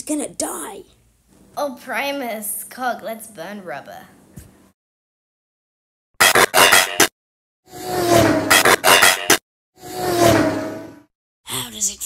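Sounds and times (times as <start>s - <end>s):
whooshes with engine tone: 7.7s - 8.8s, 9.8s - 11.1s.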